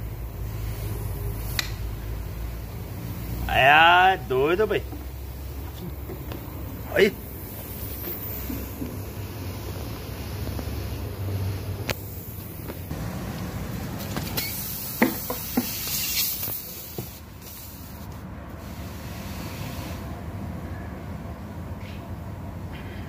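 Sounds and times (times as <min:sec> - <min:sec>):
steady low hum: 0:00.0 - 0:14.2
air hissing: 0:00.0 - 0:20.2.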